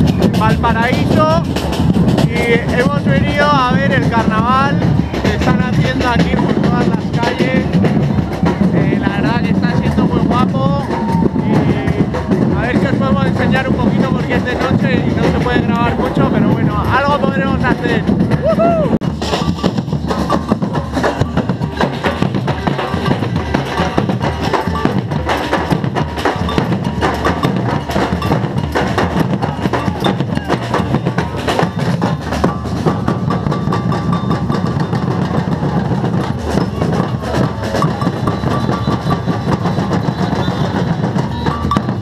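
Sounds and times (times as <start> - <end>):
fast drumming with bass drum: 0.0 - 42.0.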